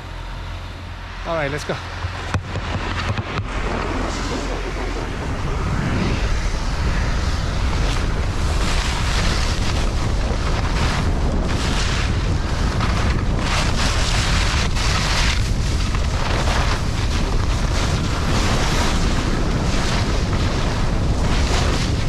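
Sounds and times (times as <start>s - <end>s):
wind buffeting microphone: 0.0s - 22.0s
skis scraping icy snow: 1.3s - 22.0s.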